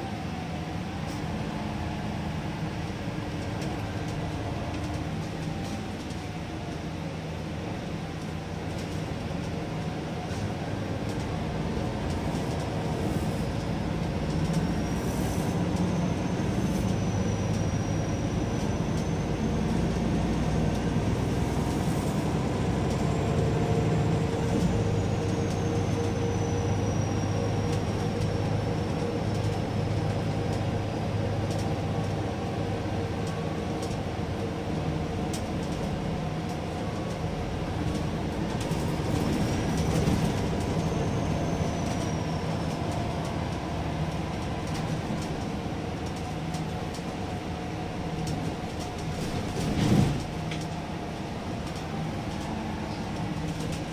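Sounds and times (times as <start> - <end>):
bus engine and road rumble: 0.0 - 53.9.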